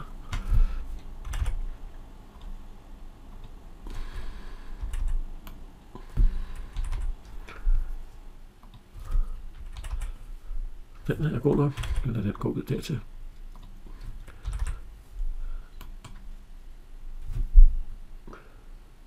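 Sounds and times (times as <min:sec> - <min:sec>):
keyboard and mouse clicks: 0:00.3 - 0:01.6, 0:03.3 - 0:07.6, 0:08.6 - 0:10.2, 0:11.4 - 0:12.2, 0:13.4 - 0:14.8, 0:15.8 - 0:16.3.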